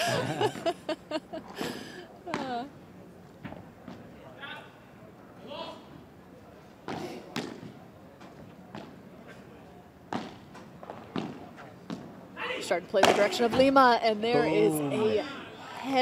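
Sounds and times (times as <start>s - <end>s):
ball bouncing on court: 10.1s - 10.4s.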